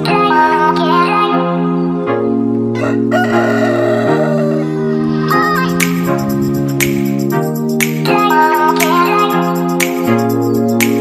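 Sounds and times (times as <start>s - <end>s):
background music with sustained chords: 0.0s - 11.0s
rooster crowing: 2.8s - 5.2s.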